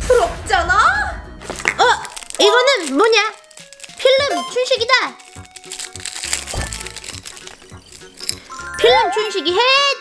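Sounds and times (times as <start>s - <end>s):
background music: 0.0s - 10.0s
plastic wrapper crinkling: 1.4s - 8.6s.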